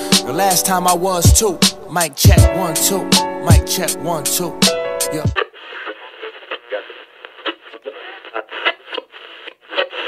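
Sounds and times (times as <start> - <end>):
hip hop beat and bass: 0.0 - 5.4
crackly voice through small speaker: 5.1 - 10.0.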